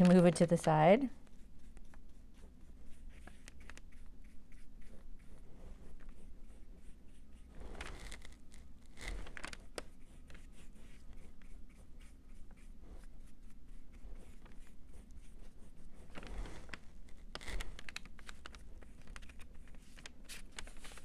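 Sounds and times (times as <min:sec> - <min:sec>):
paint pots clicking and knocking: 0:00.0 - 0:00.6
paintbrush strokes on wood: 0:01.2 - 0:17.2.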